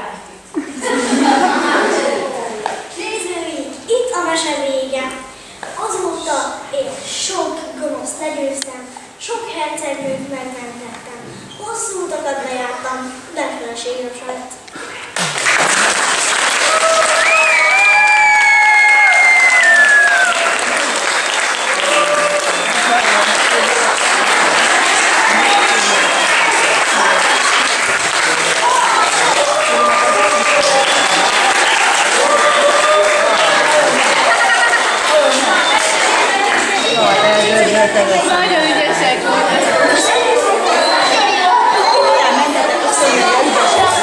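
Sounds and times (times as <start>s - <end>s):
audience applauding: 15.1s - 38.5s
long high shout: 16.6s - 20.7s, 21.7s - 22.6s, 28.6s - 34.7s
voices: 21.7s - 44.0s.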